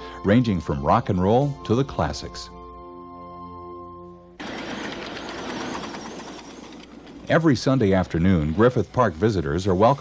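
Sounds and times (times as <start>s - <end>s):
steam locomotive running on track: 4.4s - 8.7s.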